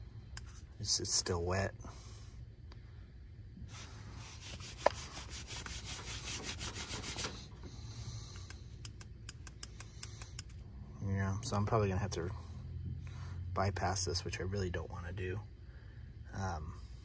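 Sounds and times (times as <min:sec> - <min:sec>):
sensor rubbed against fabric: 0:03.6 - 0:08.2
light handling clicks: 0:08.3 - 0:10.6.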